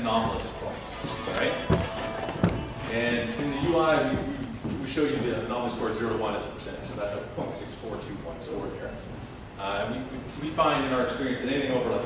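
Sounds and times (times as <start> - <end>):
sharp knocks: 1.7 - 2.8
man's low voice: 2.8 - 5.7.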